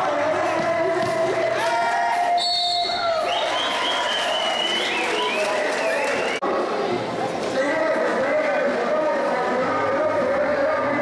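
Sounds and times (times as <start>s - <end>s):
crowd noise: 0.0s - 11.0s
referee's whistle: 2.4s - 6.4s.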